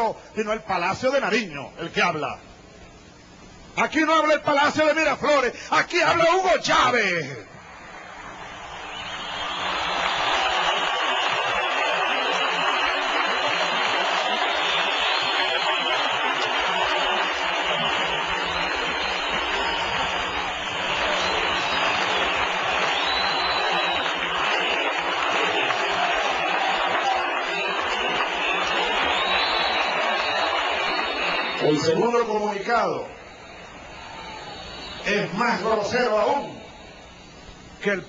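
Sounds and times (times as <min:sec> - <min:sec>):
large crowd cheering and applauding: 0:07.6 - 0:37.2.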